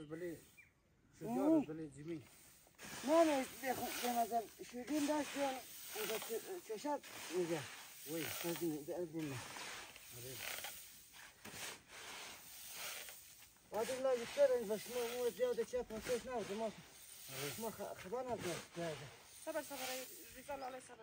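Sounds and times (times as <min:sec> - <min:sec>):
grain showering onto heap: 0:02.3 - 0:21.0.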